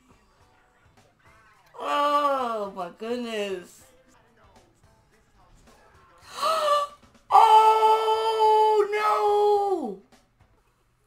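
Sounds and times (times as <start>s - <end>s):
woman gasping: 6.3s - 6.9s.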